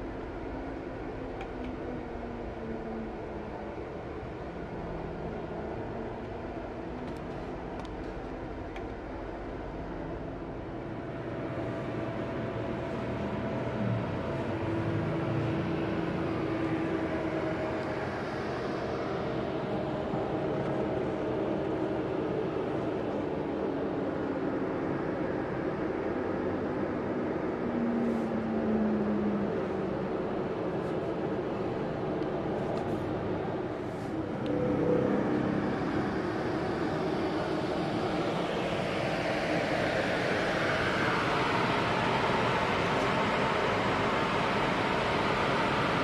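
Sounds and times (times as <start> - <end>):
bus engine running: 27.5 - 46.0
long tones shifting in pitch: 34.2 - 42.0.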